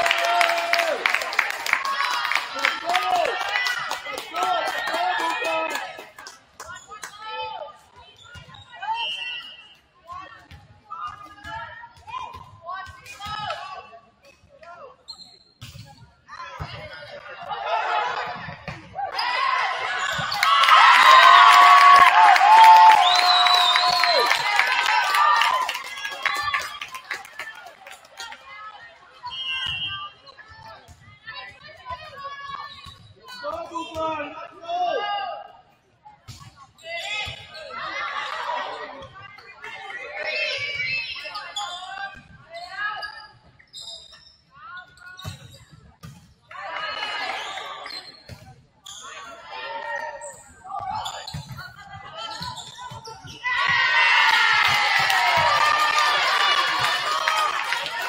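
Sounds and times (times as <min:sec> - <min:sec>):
high-pitched cheering and shouting: 0:19.1 - 0:26.7
voices calling out and chatting: 0:22.4 - 0:45.8, 0:46.5 - 0:58.0.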